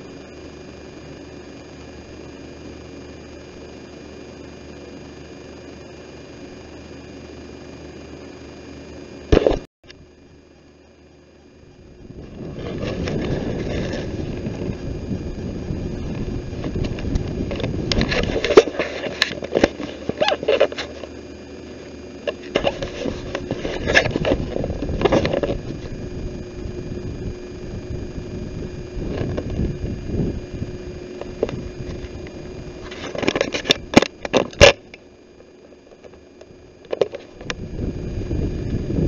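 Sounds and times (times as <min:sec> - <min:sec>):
faint steady whine: 0:00.0 - 0:39.0
camera handling rumble: 0:09.3 - 0:10.0, 0:12.0 - 0:37.8.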